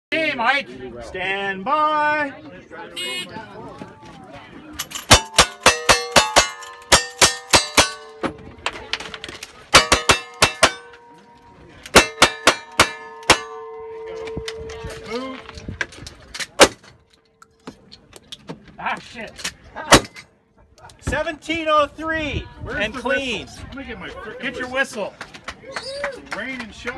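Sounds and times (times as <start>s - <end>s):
steel plate targets ringing: 5.0s - 8.4s, 9.7s - 15.2s.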